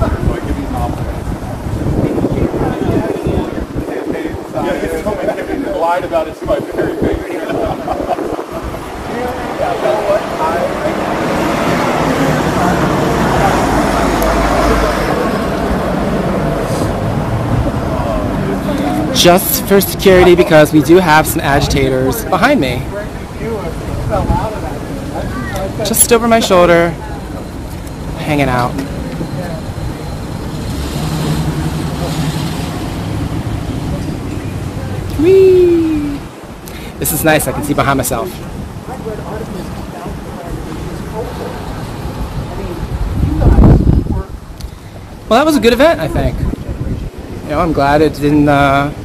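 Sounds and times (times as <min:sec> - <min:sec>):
bus engine rumble and tyre noise: 0:00.0 - 0:49.0
road noise: 0:00.0 - 0:49.0
street traffic: 0:00.0 - 0:49.0
vehicle engine hum: 0:26.9 - 0:36.8.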